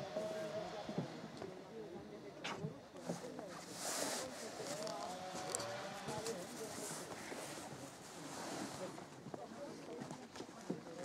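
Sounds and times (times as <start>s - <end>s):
distant people talking: 0.0s - 11.0s.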